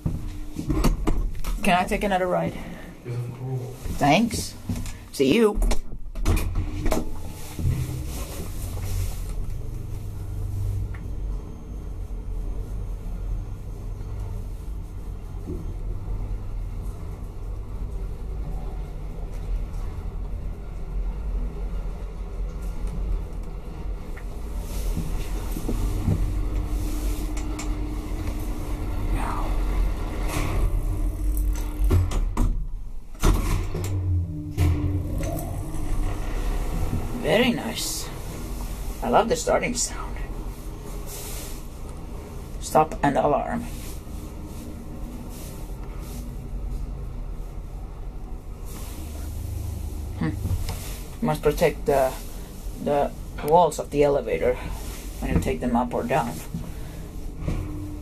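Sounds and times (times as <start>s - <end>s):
elevator running low rumble: 0.0s - 58.0s
steady hum: 0.0s - 58.0s.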